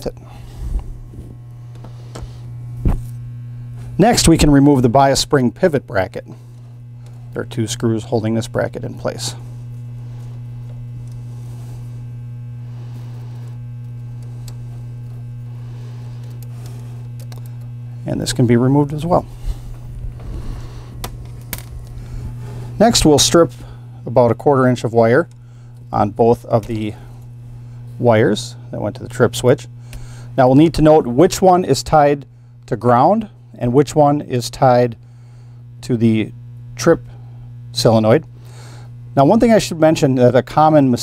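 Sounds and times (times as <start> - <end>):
electrical mains hum: 0.0 - 41.0.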